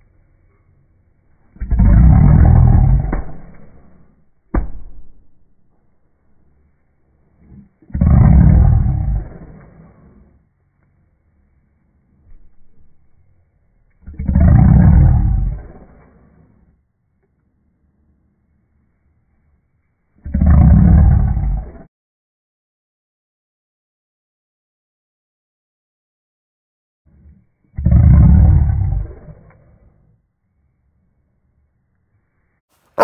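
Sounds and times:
dog grunt: 1.6 - 4.0, 7.4 - 10.3, 14.0 - 16.5.

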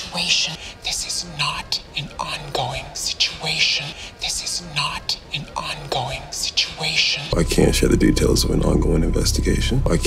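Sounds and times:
woman speaking: 0.0 - 7.4.

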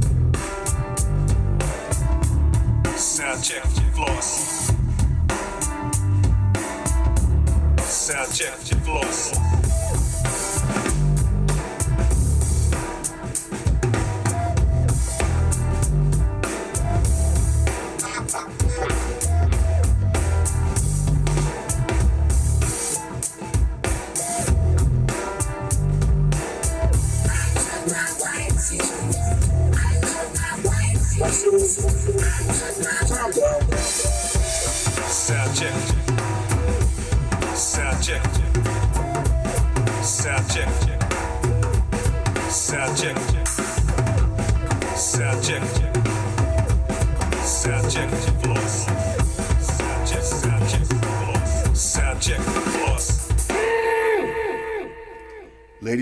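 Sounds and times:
drum kit through speaker: 0.0 - 54.0.

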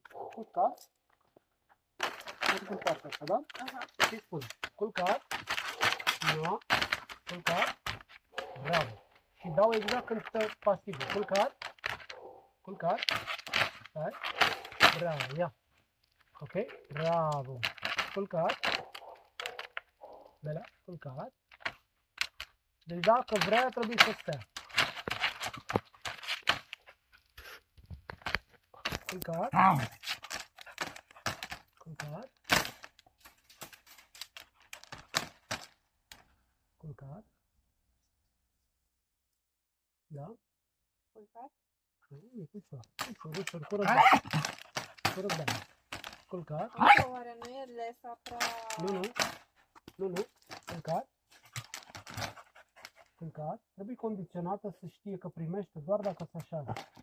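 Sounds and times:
man giving cues to a dog: 0.1 - 0.9, 2.5 - 5.2, 8.4 - 11.6, 12.6 - 13.1, 14.8 - 15.6, 22.9 - 24.4, 42.0 - 44.2
dog calling: 8.3 - 12.6, 14.2 - 15.0, 18.6 - 20.4, 43.6 - 45.0, 46.7 - 47.2.

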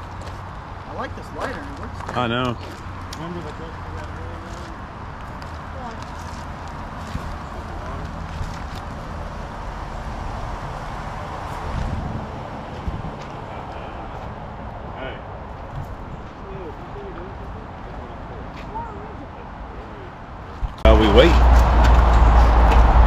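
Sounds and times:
wind rushing: 10.2 - 13.6, 20.6 - 23.0
faint voices: 16.3 - 21.4.

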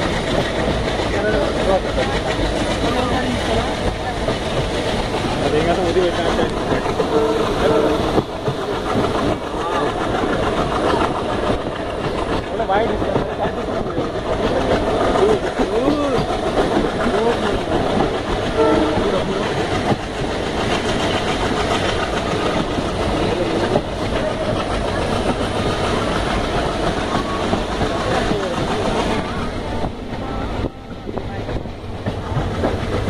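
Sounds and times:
train wheels clacking on rails: 0.0 - 33.0
voices: 0.0 - 33.0.

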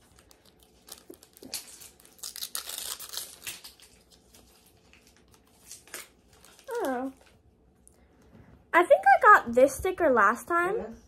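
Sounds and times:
wrapper tearing and crinkling: 0.0 - 7.4.

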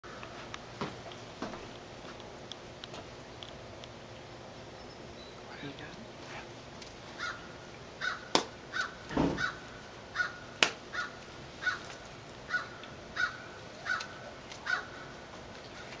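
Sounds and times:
bird short harsh calls: 7.2 - 15.1.

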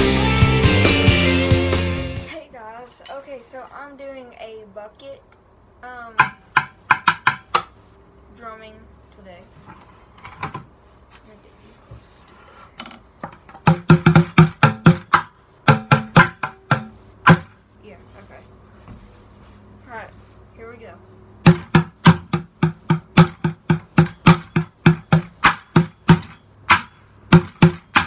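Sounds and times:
drumsticks hitting plastic bucket: 12.8 - 17.6, 21.5 - 28.0.

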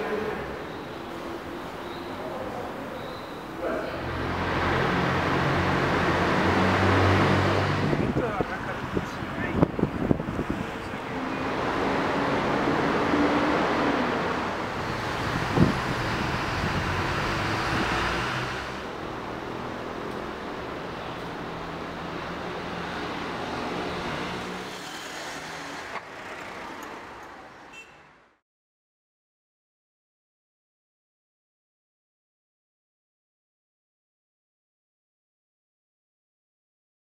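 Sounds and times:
road traffic passing: 0.0 - 28.4.

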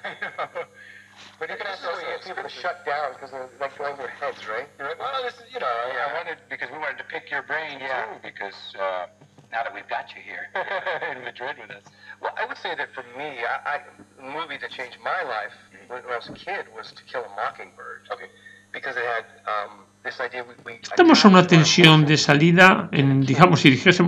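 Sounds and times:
radio broadcast speech: 0.0 - 24.0
steady low hum: 0.0 - 24.0.

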